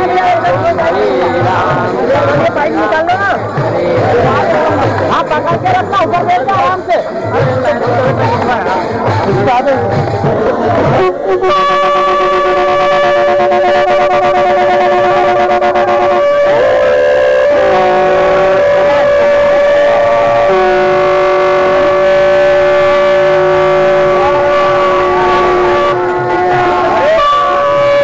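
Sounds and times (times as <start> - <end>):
sustained musical tones: 0.0 - 28.0.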